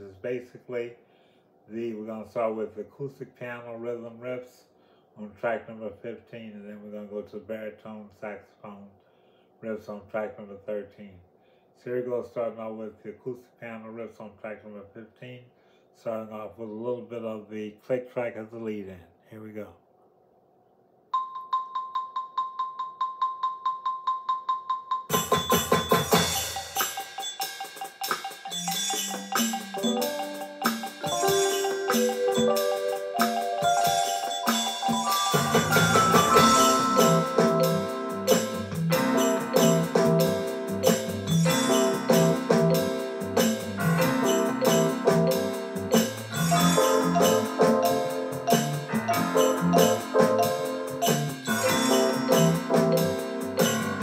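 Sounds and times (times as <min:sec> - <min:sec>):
keyboard piano riffs: 0:25.1 - 0:54.0.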